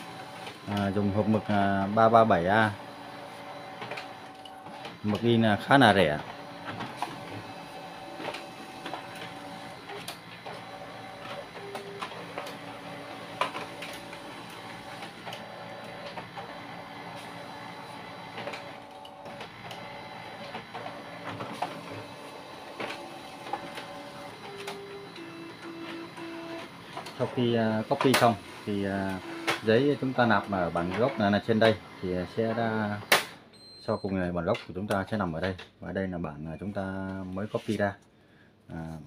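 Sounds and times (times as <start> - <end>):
printer mechanical whirr: 0.0 - 33.4
printer motor tones: 0.0 - 33.8
printer clicks: 6.2 - 16.6, 18.1 - 33.4.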